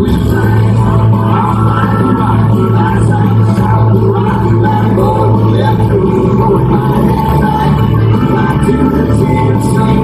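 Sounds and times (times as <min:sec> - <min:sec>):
loud live country music: 0:00.0 - 0:10.0.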